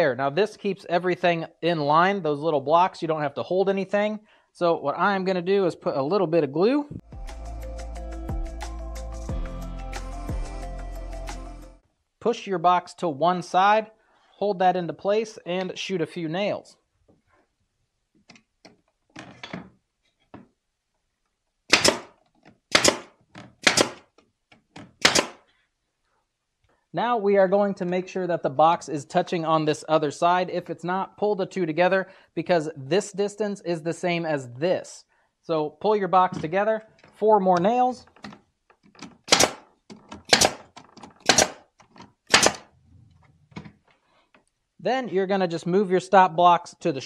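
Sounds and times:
nail gun shots: 21.7 - 24.1, 25.0 - 25.4, 39.2 - 41.7, 42.3 - 42.7.

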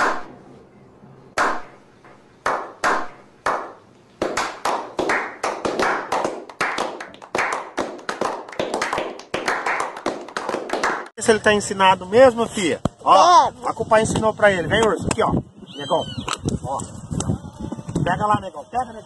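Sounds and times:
slow single claps: 1.4 - 11.1
people applauding: 4.4 - 11.1.

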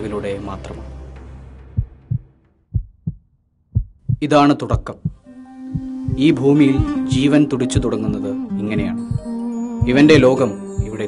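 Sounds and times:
heartbeat thumps: 1.7 - 11.0.

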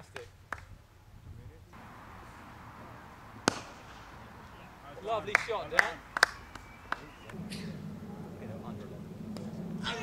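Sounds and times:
outdoor background noise: 0.0 - 10.0
cricket bat striking ball: 3.4 - 4.2.

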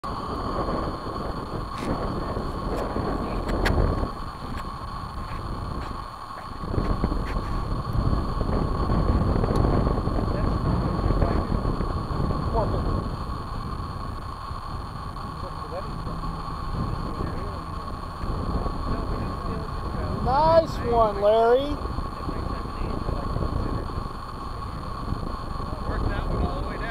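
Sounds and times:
high electronic whine: 0.0 - 26.9
wind buffeting microphone: 0.0 - 26.9.

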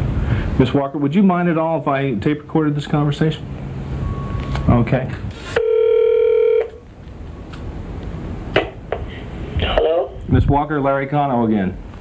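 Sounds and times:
phone line hiss: 4.0 - 4.8, 5.5 - 6.8
electronic telephone beep: 5.6 - 6.8.

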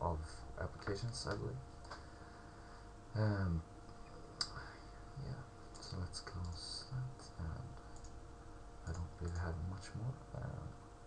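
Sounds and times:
faint electrical hum: 0.0 - 11.0
computer mouse clicking: 5.7 - 6.6, 7.8 - 8.2, 8.9 - 9.6.

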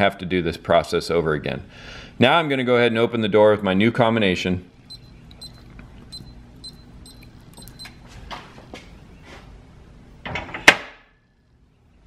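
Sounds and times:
keypad beeps: 4.8 - 8.0.

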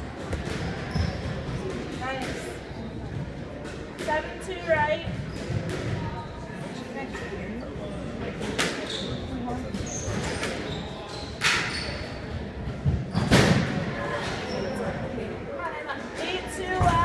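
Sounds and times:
squash ball hitting racquets and walls: 0.0 - 4.4, 5.0 - 6.7, 8.3 - 10.7, 11.3 - 14.5
sneakers squeaking on hardwood floor: 0.3 - 3.3, 5.0 - 6.7, 8.8 - 13.4.

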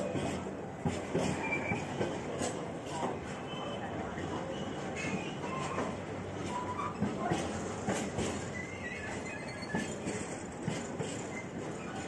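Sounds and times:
train wheels rumbling on rail: 0.0 - 12.0
high wheel squeals: 8.4 - 10.2.

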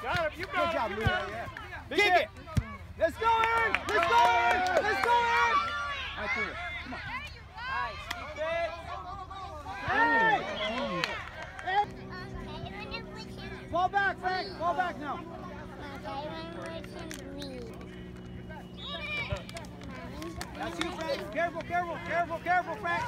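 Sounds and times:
steady low hum: 5.7 - 23.0.

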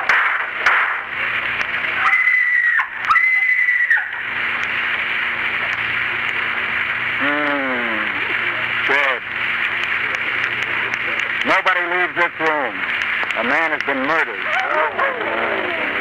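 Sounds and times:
radio recording hiss: 0.0 - 16.0
high-pitched screams: 2.0 - 4.2
moan falling in pitch: 7.2 - 8.2.

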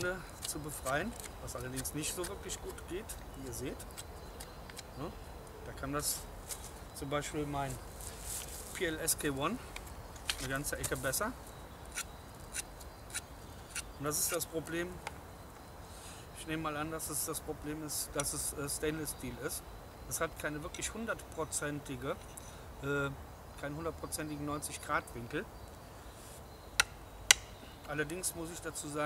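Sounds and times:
knife scraping bark off stick: 0.2 - 4.9, 11.9 - 14.5.

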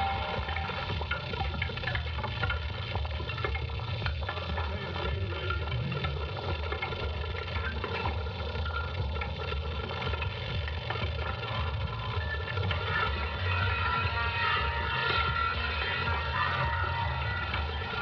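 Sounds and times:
continuous low rumble: 0.0 - 18.0
dense held tones: 0.0 - 18.0.

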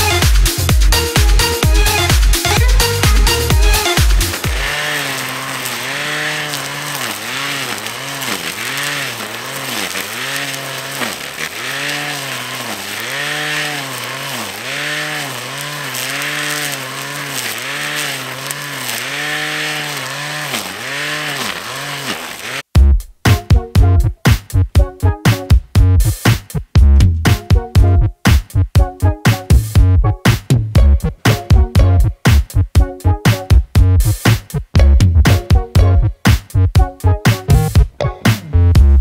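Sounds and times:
grass trimmer engine cutting grass: 0.0 - 22.7.

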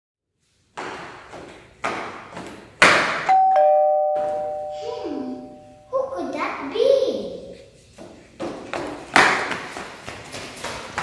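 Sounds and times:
ding-dong doorbell chime: 3.3 - 5.9.

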